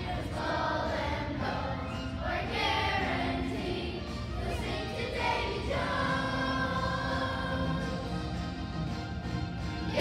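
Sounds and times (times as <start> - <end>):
children's choir singing: 0.0 - 8.7, 9.8 - 10.0.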